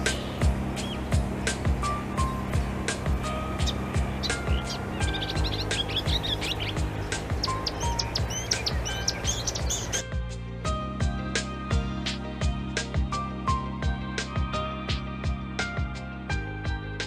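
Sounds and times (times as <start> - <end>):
small birds chirping: 0.0 - 10.1
background music with steady beat: 0.0 - 17.0.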